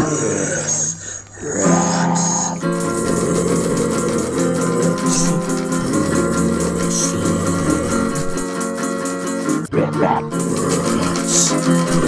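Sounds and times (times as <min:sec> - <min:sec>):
person singing: 0:00.0 - 0:12.0
strummed guitar: 0:01.6 - 0:12.0.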